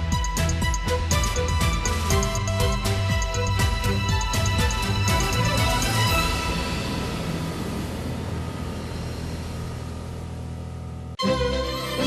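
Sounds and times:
theme music: 0.0 - 12.0.

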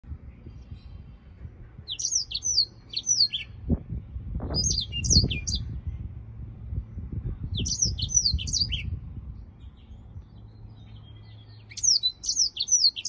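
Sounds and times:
low rumbling noise: 0.0 - 12.3
canary singing: 1.9 - 3.6, 4.5 - 5.8, 7.5 - 13.0.

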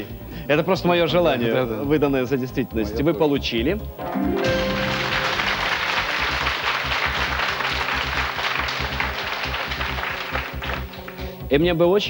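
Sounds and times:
audience applauding: 4.0 - 11.4.

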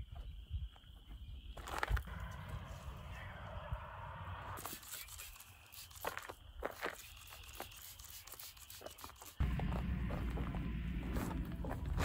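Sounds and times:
footsteps on gravel: 1.6 - 2.4, 5.8 - 8.0, 8.8 - 12.0
spray bottle spritzing: 4.6 - 9.4.

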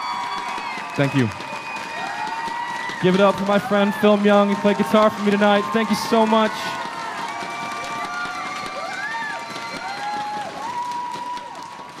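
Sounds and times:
audience cheering: 0.0 - 12.0.

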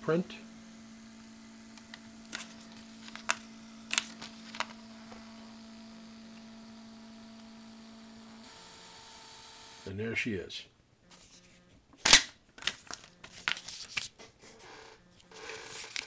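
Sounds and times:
printer motor hum: 0.0 - 10.0.

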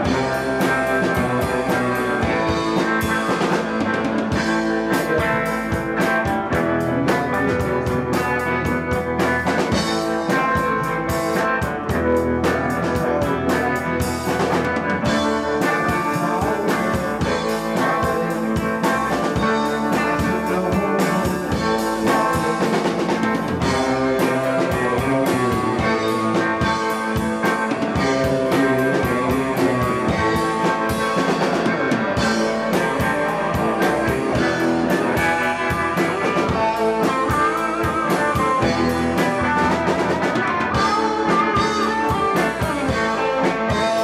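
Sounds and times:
drum kit: 0.0 - 44.0
electric guitars: 0.0 - 44.0.

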